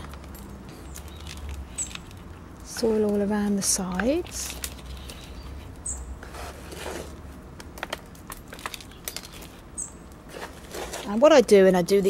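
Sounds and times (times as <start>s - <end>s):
gritty potting mix crunching: 0.0s - 12.0s.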